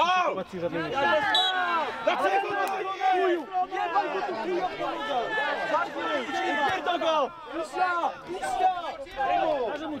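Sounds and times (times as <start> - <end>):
voices shouting over one another: 0.0 - 10.0.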